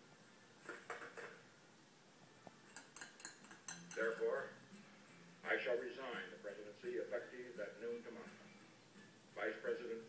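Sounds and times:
glass clinking on tray: 2.7s - 4.2s
man speaking: 5.4s - 8.4s, 9.4s - 10.0s.

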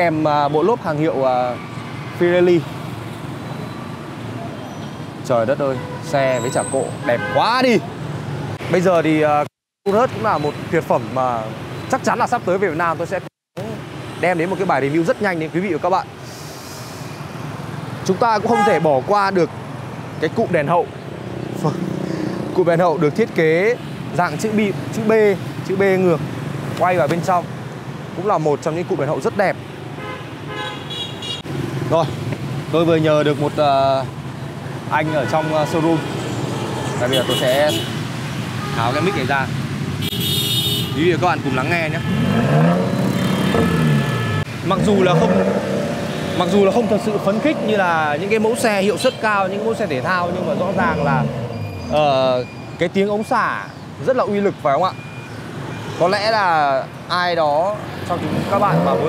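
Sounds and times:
hum of passing vehicles: 13.6s - 59.0s
vehicle horn tooting: 18.5s - 18.8s, 30.0s - 31.4s, 35.0s - 36.0s, 37.0s - 38.0s, 38.6s - 39.4s, 40.0s - 41.2s, 43.8s - 44.5s
car engine revving: 42.0s - 48.8s.

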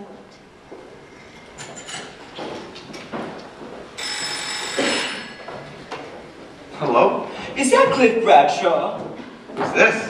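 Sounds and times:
telephone bell ringing: 4.0s - 5.5s.

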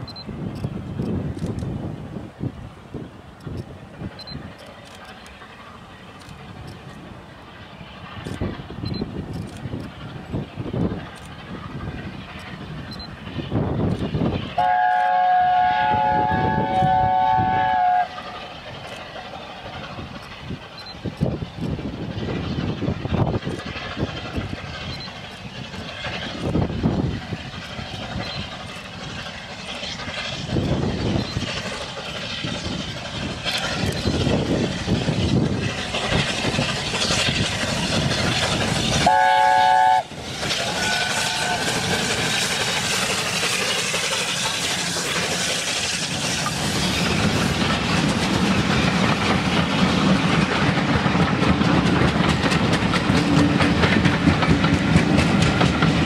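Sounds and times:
steam locomotive exhaust: 0.0s - 56.0s
steam chime whistle: 14.6s - 18.2s, 39.0s - 42.3s.

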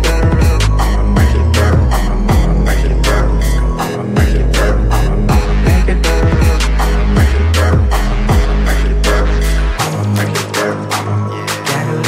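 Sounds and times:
hip-hop drum hits: 0.0s - 3.2s, 3.8s - 9.2s
deep sliding bass: 0.0s - 11.4s.

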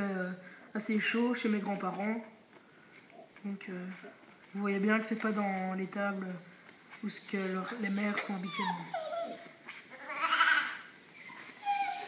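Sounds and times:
dog whining: 7.1s - 12.0s.

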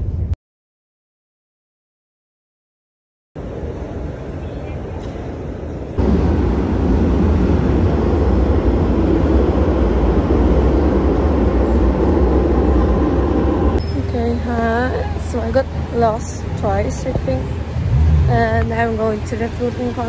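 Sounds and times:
metro train rumble: 3.4s - 20.0s
train carriage running noise: 3.4s - 20.0s.

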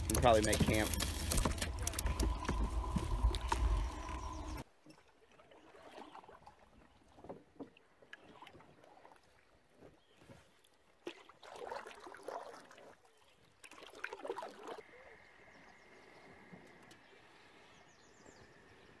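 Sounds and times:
paddle strokes splashing: 0.0s - 14.8s
paddle pulling through water: 0.0s - 18.8s.

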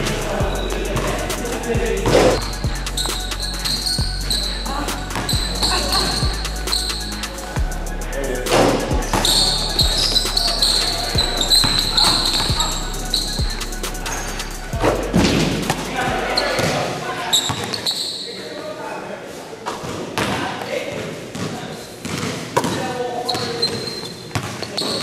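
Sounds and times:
background music: 0.0s - 16.8s
voices in background: 0.0s - 25.0s.

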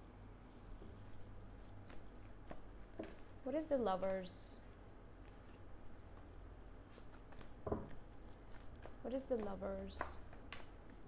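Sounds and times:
cards being shuffled: 1.0s - 3.4s, 5.2s - 11.0s.

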